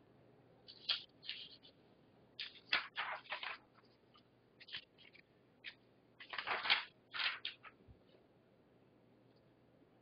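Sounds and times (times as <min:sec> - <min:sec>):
paper rustling and scraping: 0:00.7 - 0:01.8, 0:02.4 - 0:07.9.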